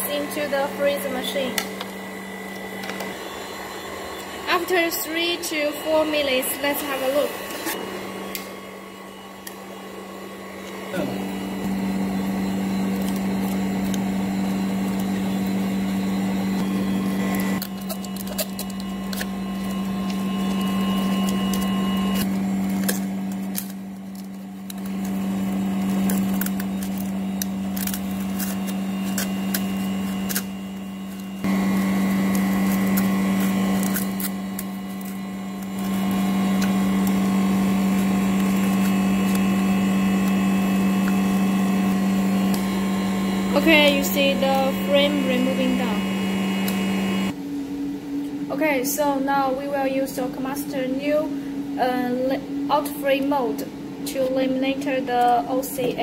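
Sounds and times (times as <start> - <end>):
machine humming: 0.0 - 49.2
plastic card clicking and scraping: 17.6 - 31.6, 32.2 - 37.2.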